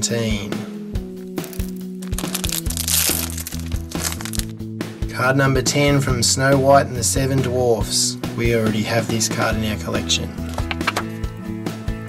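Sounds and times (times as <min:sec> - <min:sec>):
background music: 0:00.0 - 0:12.0
wrapper crinkling and tearing: 0:01.3 - 0:04.6.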